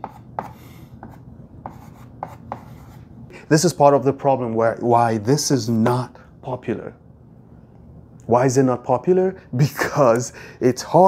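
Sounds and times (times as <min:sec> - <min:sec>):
chalk writing on blackboard: 0:00.0 - 0:03.1.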